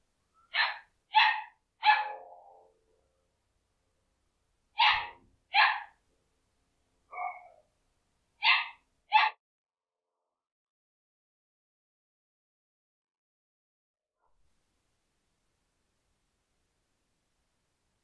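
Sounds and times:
dog barking: 0:00.5 - 0:02.4, 0:04.8 - 0:06.0, 0:07.1 - 0:07.6, 0:08.4 - 0:09.4.

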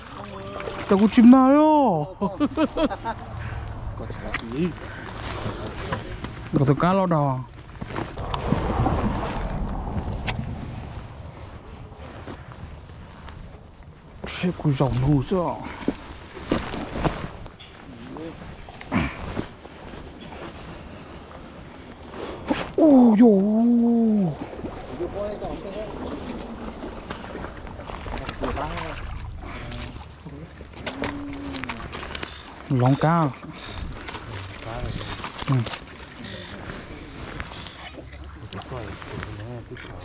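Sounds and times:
outdoor noise haze: 0:01.6 - 0:40.0.

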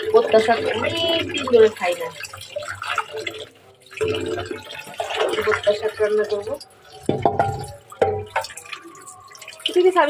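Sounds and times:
tap water pouring into metal pot: 0:00.0 - 0:10.0
water splashing and dripping: 0:00.0 - 0:10.0.

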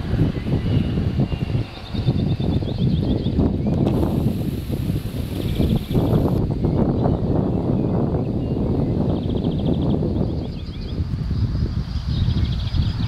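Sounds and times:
wind buffeting microphone: 0:00.0 - 0:13.0
bird chirps: 0:00.4 - 0:06.4
bird trilling: 0:04.0 - 0:06.4.

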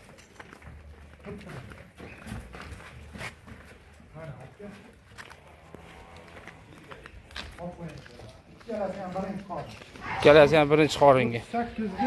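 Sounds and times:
footsteps on concrete: 0:00.0 - 0:10.6
hooves on concrete: 0:00.0 - 0:12.0.

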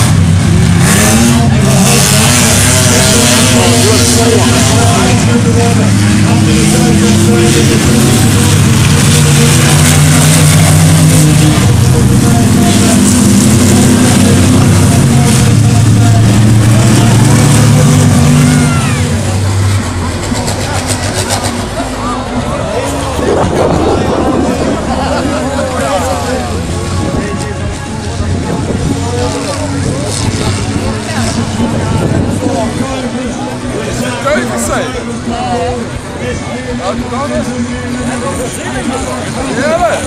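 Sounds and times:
racing engines revving: 0:00.0 - 0:40.0.

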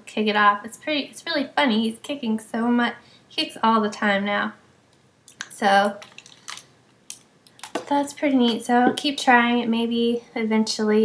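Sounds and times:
woman speaking: 0:00.0 - 0:04.6, 0:05.4 - 0:06.0, 0:07.8 - 0:11.0.

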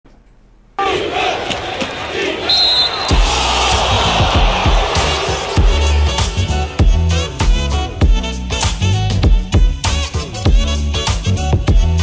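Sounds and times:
crowd noise: 0:00.8 - 0:08.0
music with thumping beat: 0:03.1 - 0:12.0.

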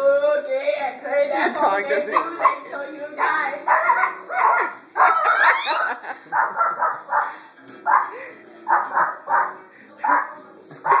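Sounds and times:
small dog barking: 0:03.7 - 0:05.4, 0:06.4 - 0:07.2.

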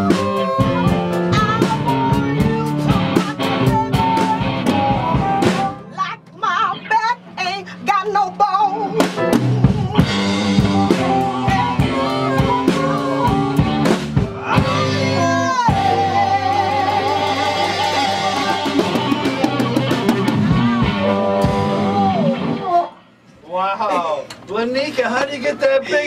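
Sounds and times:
drum kit: 0:00.0 - 0:06.6, 0:08.3 - 0:22.9
bass guitar: 0:00.0 - 0:07.0, 0:08.4 - 0:23.0
electric guitar: 0:00.0 - 0:23.1
keyboards: 0:08.8 - 0:23.3.

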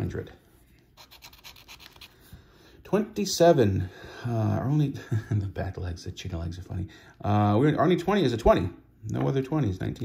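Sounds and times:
scratching lottery ticket: 0:01.0 - 0:02.2.

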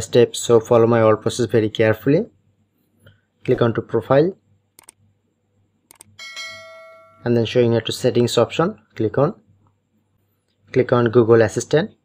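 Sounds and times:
mouse clicks: 0:04.8 - 0:05.0, 0:05.9 - 0:06.2
notification bell chime: 0:06.2 - 0:07.4.

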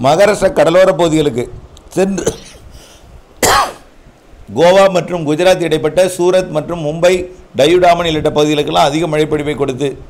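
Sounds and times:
man coughing: 0:02.2 - 0:02.7, 0:03.4 - 0:03.9.

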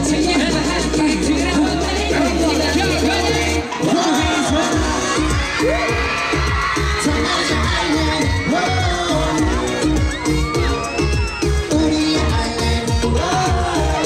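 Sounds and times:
dance track over sound system: 0:00.0 - 0:14.0
crowd cheering and screaming: 0:00.2 - 0:14.0.

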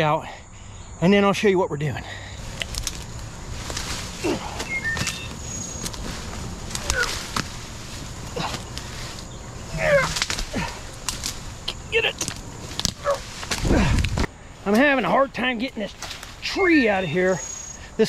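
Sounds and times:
branches rustling and snapping: 0:02.4 - 0:17.6
grunts of effort: 0:04.0 - 0:04.7, 0:06.1 - 0:12.3, 0:12.9 - 0:14.3.

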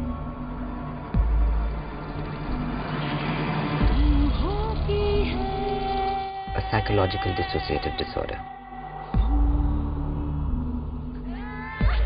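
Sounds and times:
low droning bass: 0:00.0 - 0:12.0.

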